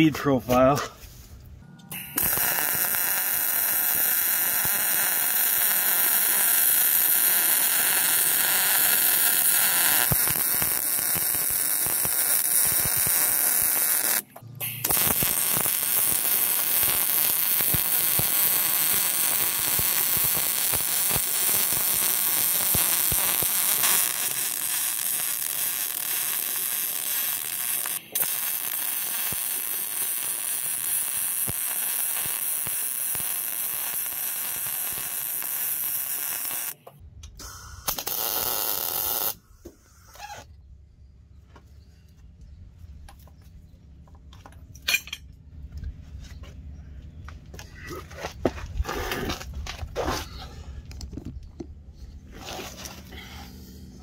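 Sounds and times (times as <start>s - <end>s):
welding arc sizzling: 1.9s - 36.8s, 37.4s - 40.2s.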